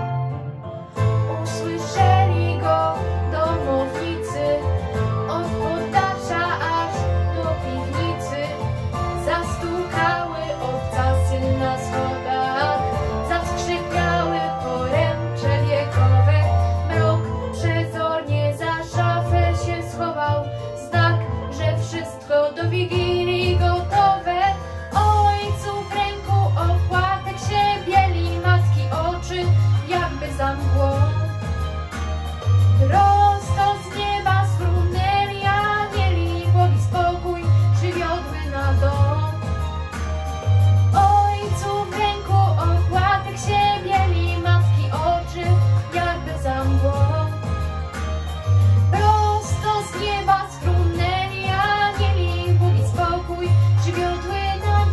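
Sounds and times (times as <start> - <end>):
instrumental backing track: 0.0 - 54.9
girl singing: 1.4 - 4.6, 5.3 - 8.6, 9.2 - 31.2, 32.8 - 39.3, 41.0 - 47.4, 48.9 - 54.9.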